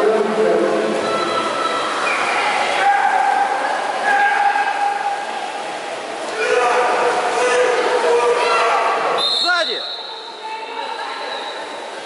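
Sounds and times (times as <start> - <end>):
echoing pool hall noise: 0.0 - 12.0.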